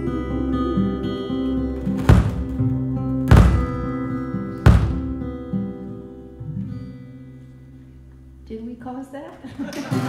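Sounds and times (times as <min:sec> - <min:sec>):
live band heavy accented hits: 0:00.0 - 0:05.4.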